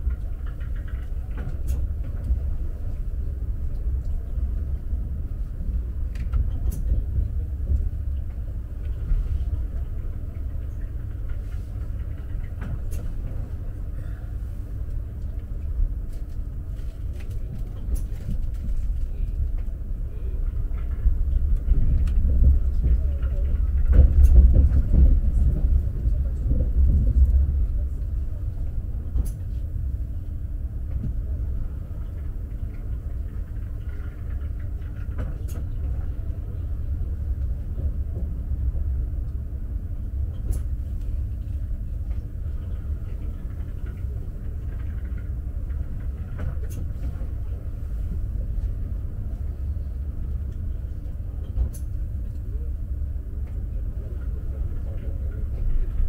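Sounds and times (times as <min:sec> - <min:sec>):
train interior rumble: 0:00.0 - 0:56.0.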